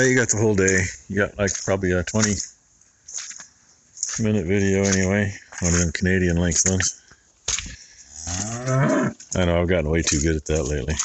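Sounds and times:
cow mooing: 8.1 - 9.2.

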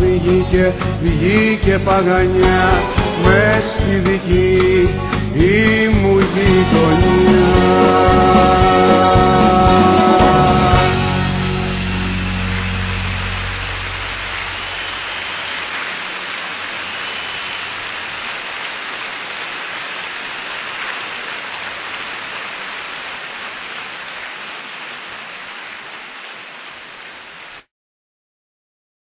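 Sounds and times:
band's last chord: 8.7 - 15.8
audience applause: 10.3 - 27.6
faint whistles: 16.8 - 17.9.

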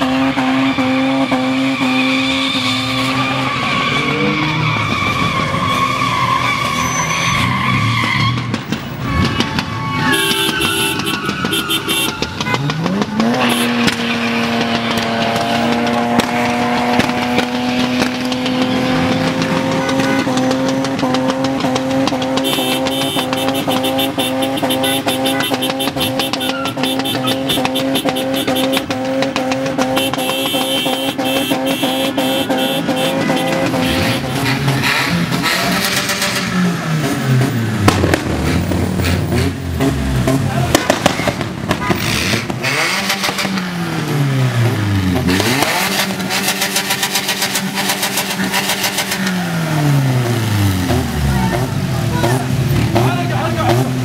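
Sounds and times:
car engine at high revs: 0.0 - 5.6, 8.5 - 54.0
car engines revving up and down: 0.0 - 54.0.

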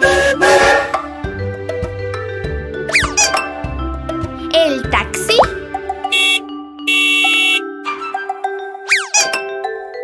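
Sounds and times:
cartoon steam train whistle: 0.0 - 1.0
children's background music: 0.0 - 10.0.

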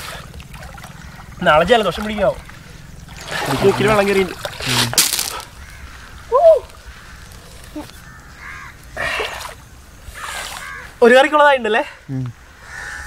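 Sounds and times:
river water sloshing and splashing: 0.0 - 7.8, 8.8 - 10.9.

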